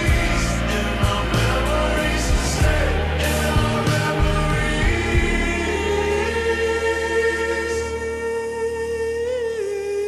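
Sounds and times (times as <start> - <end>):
low bass: 0.0 - 10.0.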